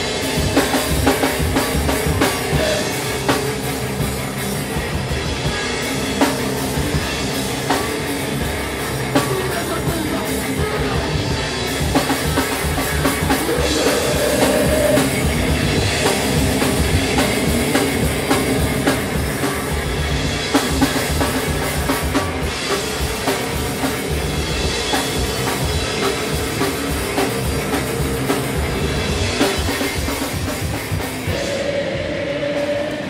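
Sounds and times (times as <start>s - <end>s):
rapid drum kit hits: 0.0s - 31.7s
rock band playing: 0.0s - 33.0s.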